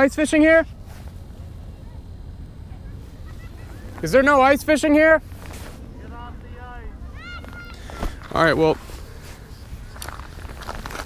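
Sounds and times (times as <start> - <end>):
low wind rumble on microphone: 0.6 - 11.0.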